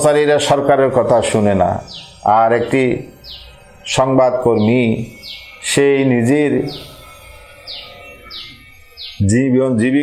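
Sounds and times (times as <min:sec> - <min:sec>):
small bird chirping: 0:00.0 - 0:10.0.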